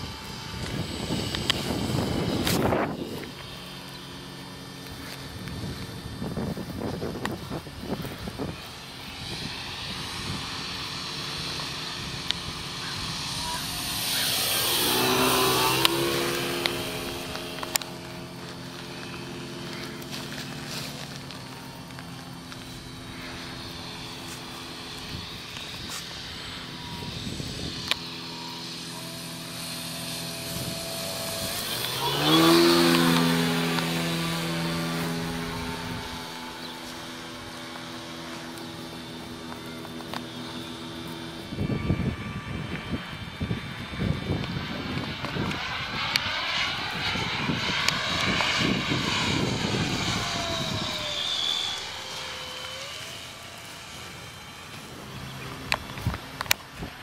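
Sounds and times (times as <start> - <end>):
electric model plane flying past: 0.0 - 57.0.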